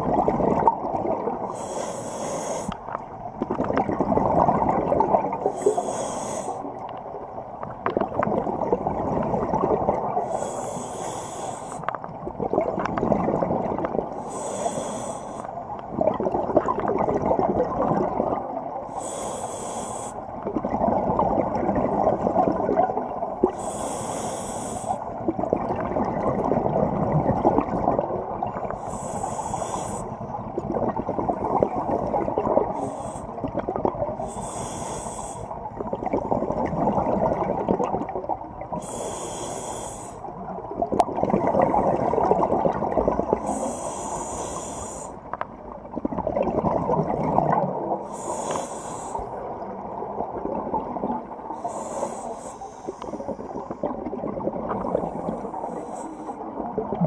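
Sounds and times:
gurgle of exhaled bubbles: 0:00.0 - 0:01.5, 0:02.8 - 0:10.6, 0:12.0 - 0:19.2, 0:20.3 - 0:23.9, 0:24.6 - 0:34.6, 0:35.5 - 0:39.0, 0:40.2 - 0:52.3, 0:52.9 - 0:57.0
scuba regulator hissing inhalations: 0:01.5 - 0:02.8, 0:05.4 - 0:06.7, 0:10.2 - 0:11.9, 0:14.2 - 0:15.6, 0:18.9 - 0:20.3, 0:23.5 - 0:25.0, 0:28.8 - 0:30.3, 0:32.7 - 0:33.4, 0:34.2 - 0:35.6, 0:38.8 - 0:40.3, 0:43.4 - 0:45.2, 0:48.0 - 0:49.4, 0:51.6 - 0:53.8, 0:55.2 - 0:56.4.

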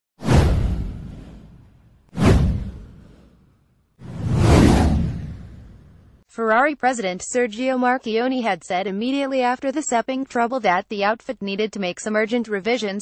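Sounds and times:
whoosh sound effects: 0:00.2 - 0:03.4, 0:04.0 - 0:06.1.

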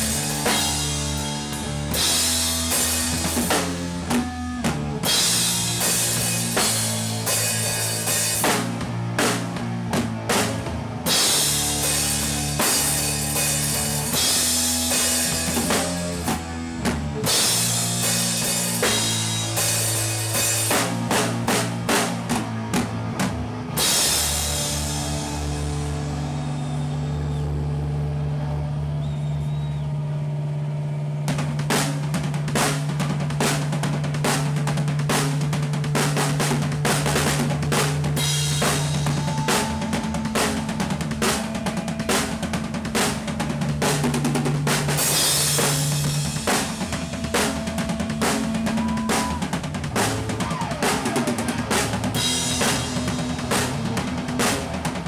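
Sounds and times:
heavy rock band playing live: 0:00.0 - 0:55.0
drum strikes: 0:31.3 - 0:55.0.

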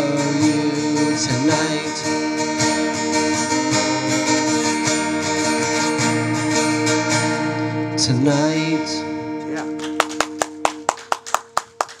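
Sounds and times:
acoustic guitar chord ringing: 0:00.0 - 0:12.0
people clapping: 0:09.6 - 0:12.0.

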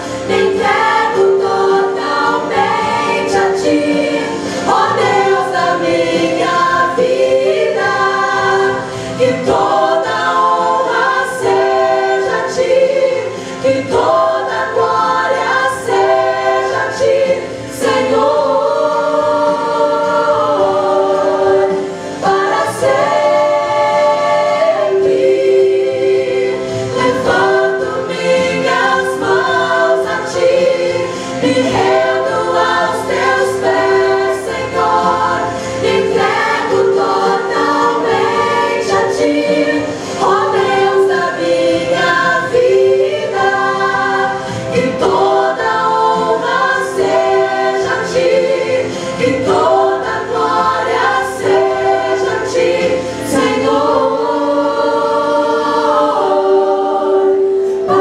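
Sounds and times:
women's choir singing in harmony: 0:00.0 - 0:58.0.

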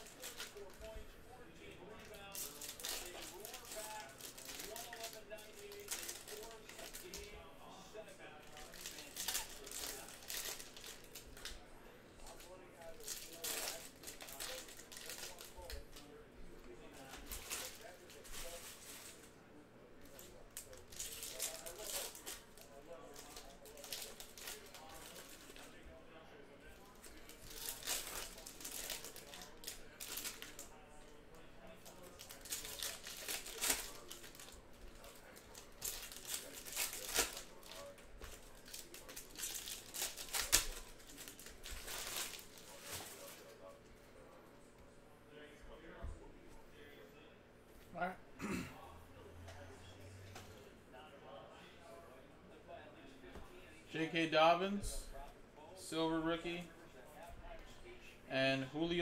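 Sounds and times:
foil wrappers crinkling: 0:00.0 - 0:01.1, 0:01.8 - 0:07.4, 0:08.4 - 0:19.4, 0:20.0 - 0:25.8, 0:26.7 - 0:43.8.

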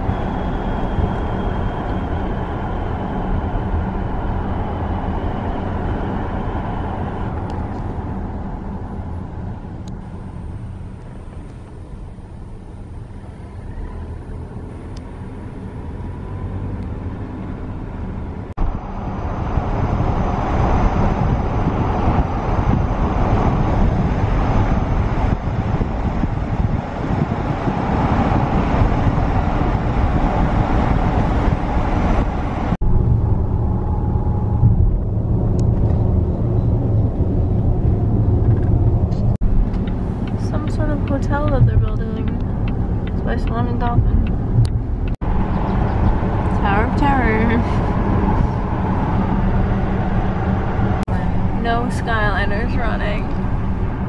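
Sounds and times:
car engine rumble: 0:00.0 - 0:54.0
road and tyre noise: 0:00.0 - 0:54.0.

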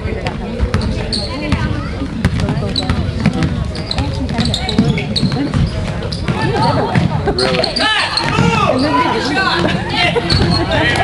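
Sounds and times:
spectators chattering: 0:00.0 - 0:11.0
basketball bouncing on wooden floor: 0:00.2 - 0:07.3, 0:08.2 - 0:08.6.

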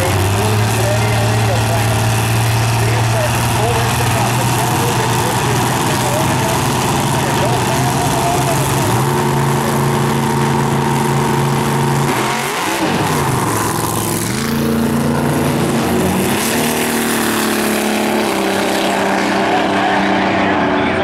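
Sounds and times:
drag race car engine: 0:00.0 - 0:21.0.

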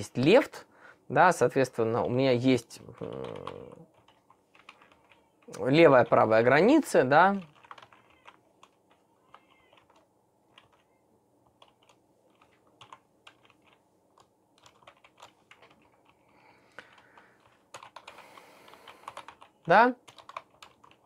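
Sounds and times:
computer keyboard typing: 0:01.9 - 0:21.0.

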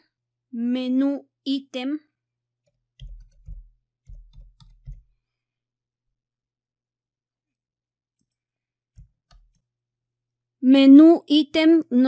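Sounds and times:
computer keyboard typing: 0:02.6 - 0:05.2, 0:09.0 - 0:09.7.

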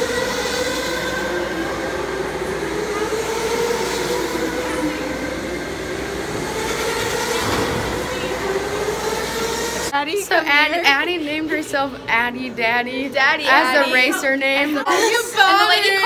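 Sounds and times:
electric go-karts whining: 0:00.0 - 0:10.0.

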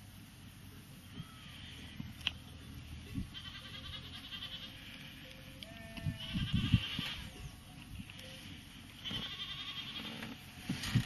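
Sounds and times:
sheep bleating: 0:03.2 - 0:07.4, 0:09.0 - 0:10.4.

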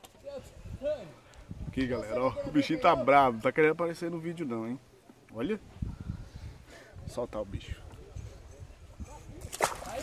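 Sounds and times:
fish splashing into water: 0:09.4 - 0:10.0.

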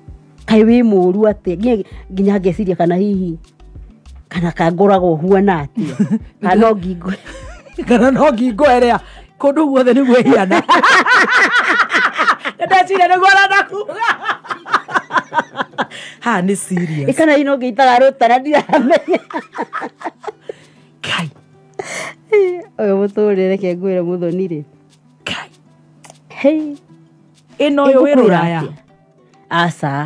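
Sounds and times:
woman laughing: 0:05.8 - 0:06.3, 0:07.1 - 0:08.3, 0:10.0 - 0:16.0, 0:18.5 - 0:20.6, 0:27.8 - 0:28.6.

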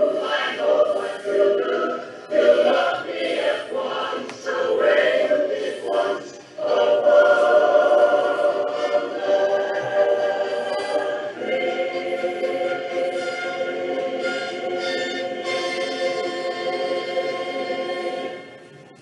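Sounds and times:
choir singing held chords: 0:00.0 - 0:18.7.

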